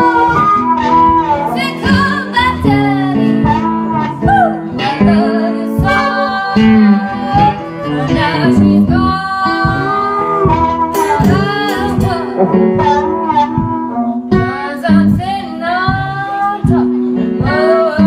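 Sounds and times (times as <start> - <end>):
bending guitar line: 0.0 - 18.0
blues band playing live: 0.0 - 18.0.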